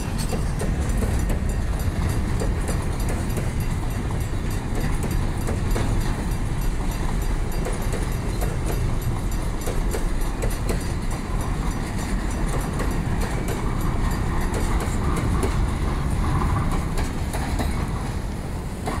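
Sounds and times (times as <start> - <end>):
train wheels rumbling on rails: 0.0 - 19.0
wheels clicking over rail joints: 0.0 - 19.0.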